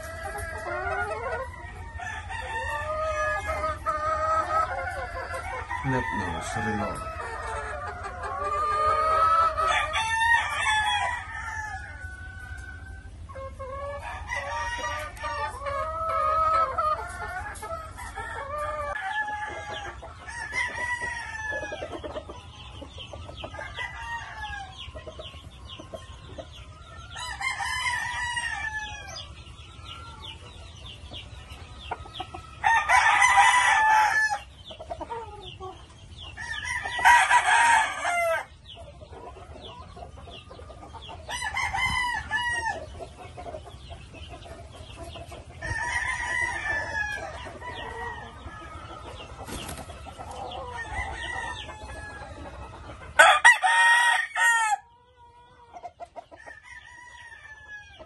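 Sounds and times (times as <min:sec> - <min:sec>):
hens clucking: 0:00.0 - 0:58.0
roosters crowing: 0:00.0 - 0:58.0.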